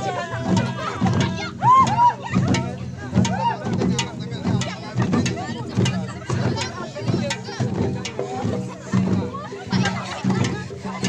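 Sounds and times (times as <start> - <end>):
drum beats: 0.0 - 11.0
many voices talking and calling: 0.0 - 11.0
sharp percussive strikes: 0.0 - 11.0.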